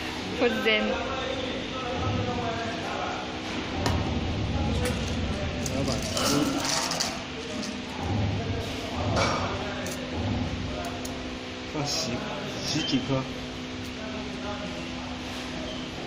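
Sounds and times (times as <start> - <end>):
steady hum: 0.0 - 16.0
metal cups and balls clinking: 5.6 - 7.8.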